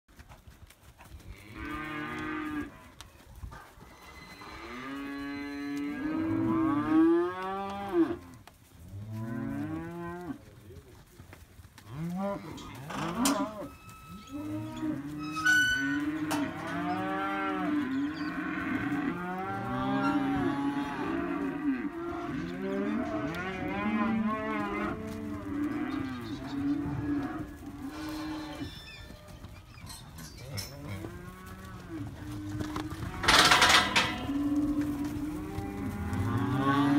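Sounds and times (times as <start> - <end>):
cattle mooing: 4.4 - 8.2, 11.9 - 28.8, 30.4 - 36.9.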